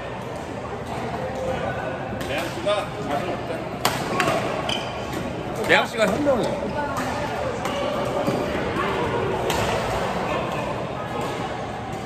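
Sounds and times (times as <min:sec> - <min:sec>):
voices in hall: 0:00.0 - 0:12.0.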